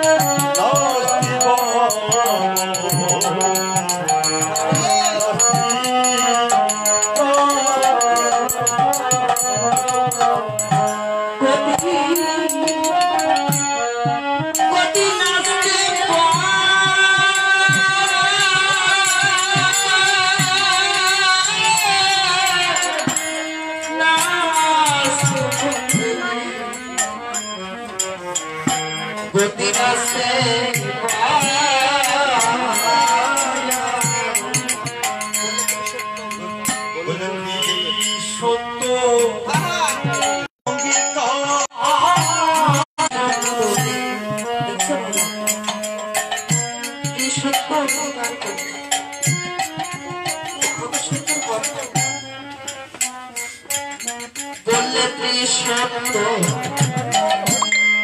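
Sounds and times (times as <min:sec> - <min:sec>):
harmonium holding notes: 0:00.0 - 0:58.0
sharp percussion strikes: 0:00.0 - 0:58.0
woman singing into a microphone: 0:07.5 - 0:13.8, 0:14.4 - 0:27.1.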